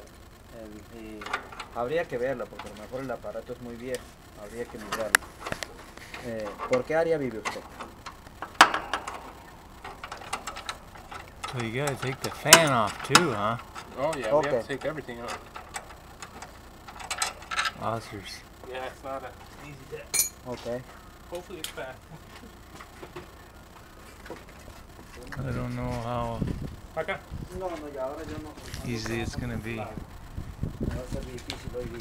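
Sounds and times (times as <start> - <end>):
hand tools clicking and tapping: 3.9 - 17.8
man's voice: 11.4 - 13.6, 27.6 - 30.1.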